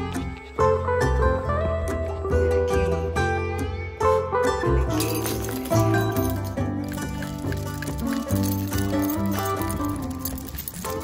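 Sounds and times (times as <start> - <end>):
plucked string tune: 0.0 - 11.0.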